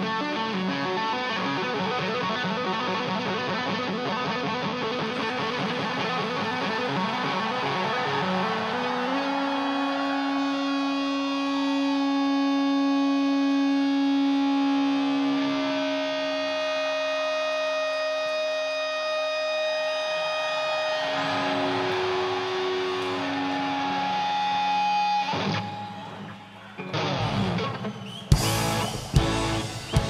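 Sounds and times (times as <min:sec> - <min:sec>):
electric guitar solo: 0:00.0 - 0:30.0
noisy guitar wash: 0:00.0 - 0:30.0.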